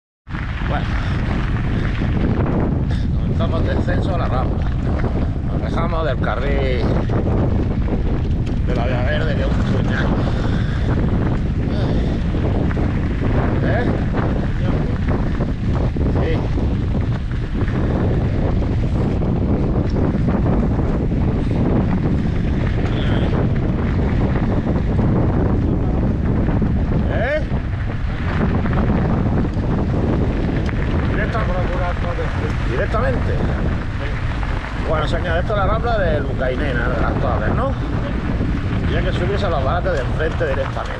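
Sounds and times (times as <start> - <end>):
tyres rumbling on gravel: 0.3 - 40.9
wind buffeting microphone: 0.3 - 40.9.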